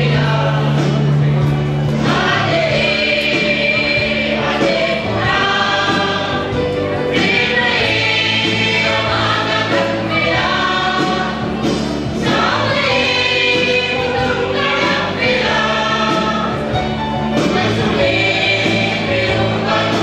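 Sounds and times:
choir singing a hymn: 0:00.0 - 0:20.0.

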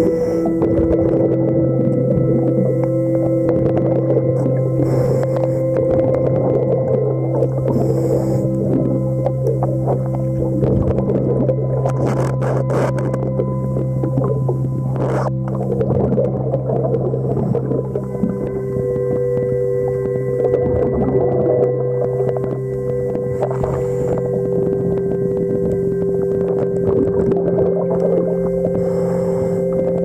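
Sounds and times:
constant crackling: 0:00.0 - 0:30.0
low tones humming: 0:00.0 - 0:30.0.

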